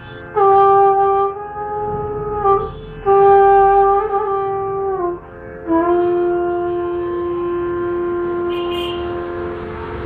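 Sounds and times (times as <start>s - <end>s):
bamboo flute long low note: 0.4s - 10.0s.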